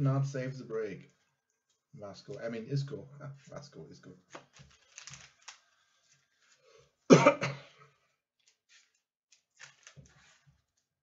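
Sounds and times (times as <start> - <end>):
man coughing: 7.1 - 7.8.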